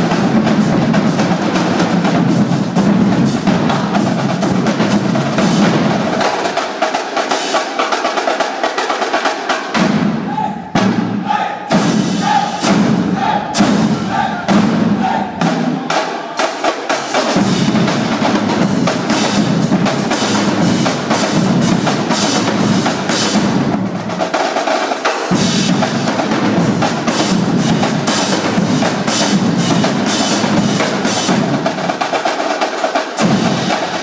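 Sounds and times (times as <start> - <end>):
snare drums: 0.0 - 34.0
tenor drums: 0.0 - 34.0.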